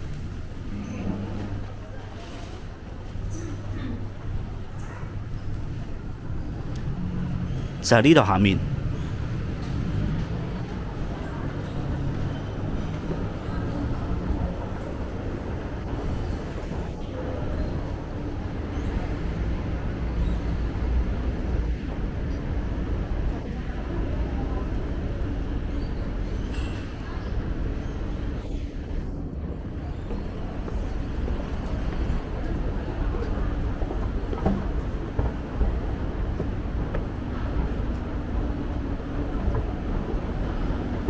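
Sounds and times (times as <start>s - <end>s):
escalator rumbling: 0.0s - 41.0s
murmur of voices: 0.0s - 41.0s.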